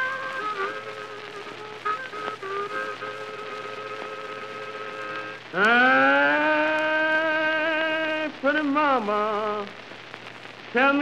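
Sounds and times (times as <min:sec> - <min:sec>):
blues harmonica wailing: 0:00.0 - 0:05.4
record surface hiss: 0:00.0 - 0:11.0.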